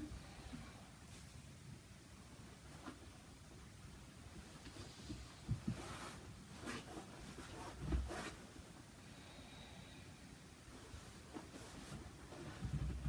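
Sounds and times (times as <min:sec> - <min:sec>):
soft thumps on yoga mat: 0:05.0 - 0:06.0.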